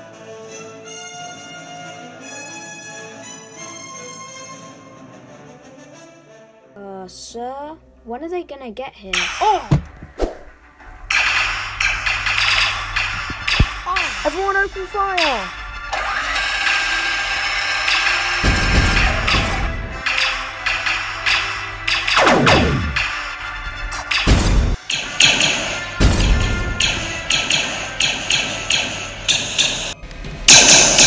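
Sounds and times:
orchestral film score: 0:00.0 - 0:31.0
heavy thump: 0:09.7 - 0:10.5
rapid blaster fire: 0:11.1 - 0:14.6, 0:15.2 - 0:23.4
blaster shot: 0:22.1 - 0:23.2
sharp burst: 0:22.1 - 0:23.2.

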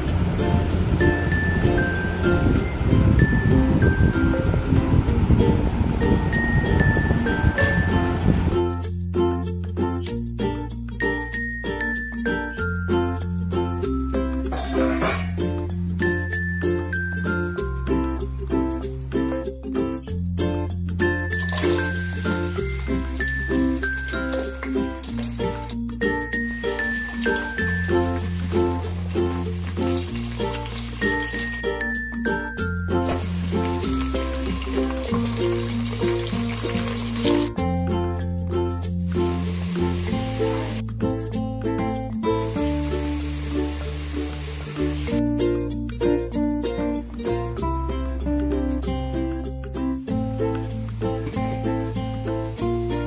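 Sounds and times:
background music with bass line: 0:00.0 - 0:53.0.

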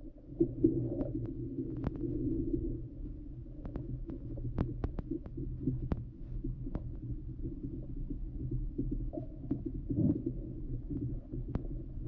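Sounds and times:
muffled underwater rumble: 0:00.0 - 0:12.0.

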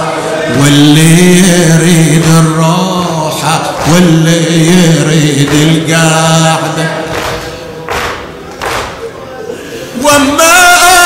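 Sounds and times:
people beating chests in unison: 0:03.6 - 0:09.2.

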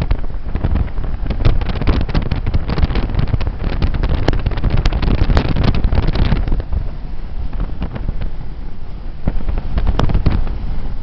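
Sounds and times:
road noise: 0:00.0 - 0:11.0
wind buffeting microphone: 0:00.0 - 0:11.0.

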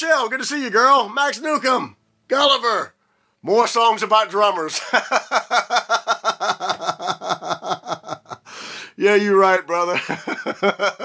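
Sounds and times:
man laughing: 0:04.7 - 0:08.5, 0:09.9 - 0:11.0
sharp breath in: 0:08.4 - 0:09.0.

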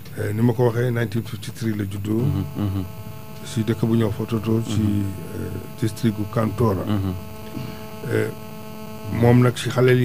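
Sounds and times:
electrical mains hum: 0:00.0 - 0:10.0
man murmuring: 0:01.9 - 0:08.4.

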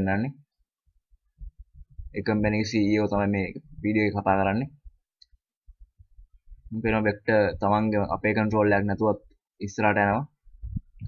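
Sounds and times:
person speaking: 0:06.7 - 0:10.4.

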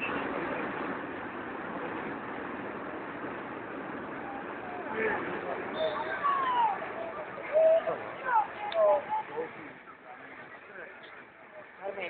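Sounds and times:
outdoor background noise: 0:00.0 - 0:12.0
distant voices calling out: 0:02.9 - 0:11.8.

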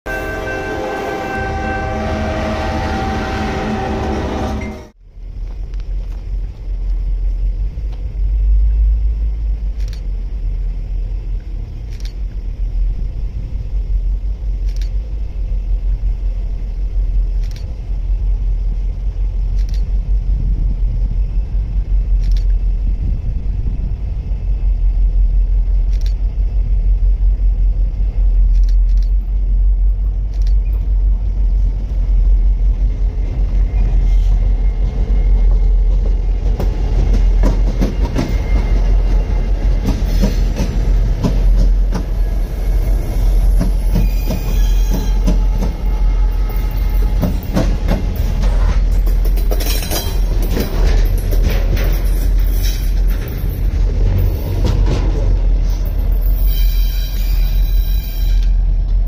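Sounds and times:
freight train rumbling: 0:00.0 - 0:59.0
high wheel squeals: 0:37.6 - 0:40.5, 0:42.2 - 0:48.2, 0:55.7 - 0:58.8.

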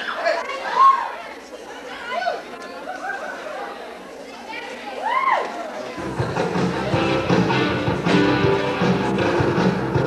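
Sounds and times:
indistinct chatter of voices: 0:00.0 - 0:10.0.

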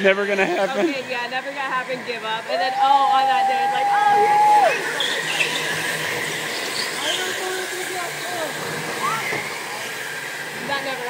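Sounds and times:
go-kart motor whine: 0:00.0 - 0:11.0
tyre squeals: 0:09.0 - 0:09.6.

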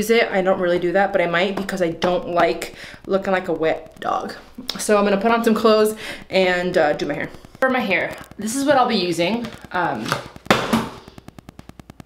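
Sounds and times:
crackly burst: 0:02.6 - 0:12.0.

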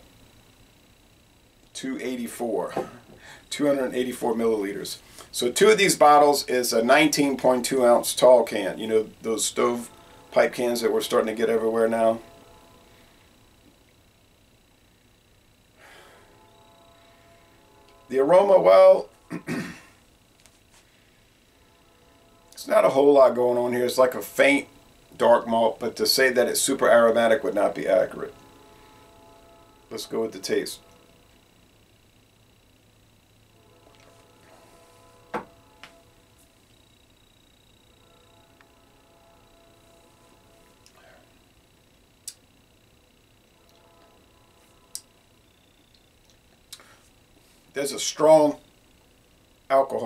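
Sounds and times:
low room hum: 0:00.0 - 0:50.0.

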